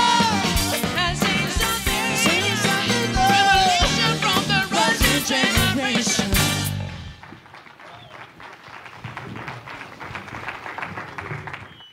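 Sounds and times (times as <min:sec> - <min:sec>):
live band playing: 0:00.0 - 0:07.3
audience applause: 0:07.2 - 0:11.9.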